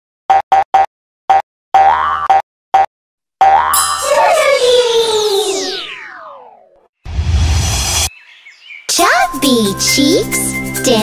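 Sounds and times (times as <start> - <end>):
cartoon boings: 1.8 - 6.8
high sparkling shimmer: 3.8 - 5.8.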